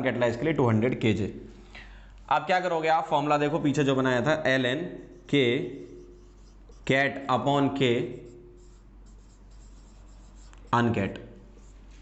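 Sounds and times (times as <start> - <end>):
low electrical hum: 0.0 - 12.0
marker writing on whiteboard: 5.0 - 12.0.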